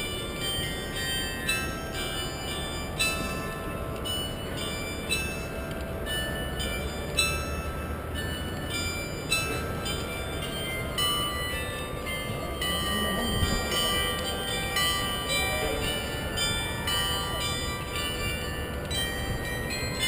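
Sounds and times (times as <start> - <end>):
chiming bell-like music: 0.0 - 20.0.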